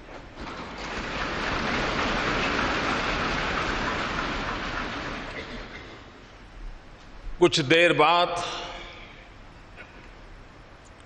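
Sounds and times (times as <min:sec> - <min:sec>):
audience applauding: 0:00.8 - 0:06.2.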